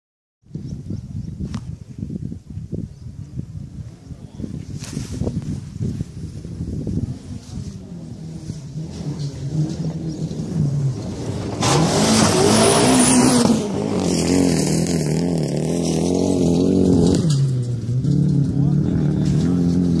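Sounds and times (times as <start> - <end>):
car engine revving: 6.4 - 20.0.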